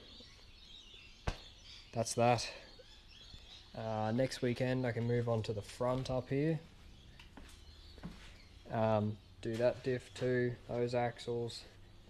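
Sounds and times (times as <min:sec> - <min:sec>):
faint birdsong: 0:00.0 - 0:12.0.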